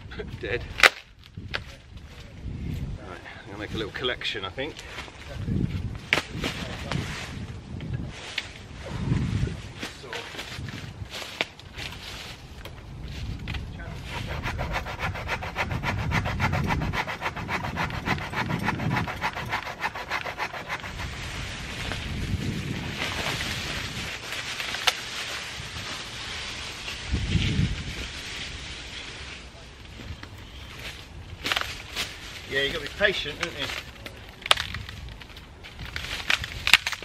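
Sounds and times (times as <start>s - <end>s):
rustling of branches: 3.6s - 37.0s
hand saw cutting wood: 14.0s - 21.4s.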